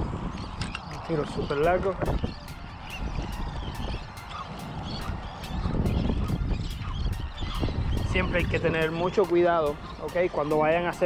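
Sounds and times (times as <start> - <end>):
seabirds calling faintly: 0.0 - 11.0
wind buffeting microphone: 0.0 - 11.0.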